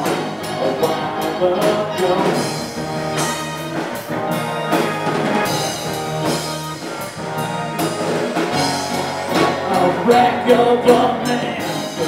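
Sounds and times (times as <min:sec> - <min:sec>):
bass guitar: 0:00.0 - 0:12.0
drum kit steady beat: 0:00.0 - 0:12.0
electric guitars: 0:00.0 - 0:12.0.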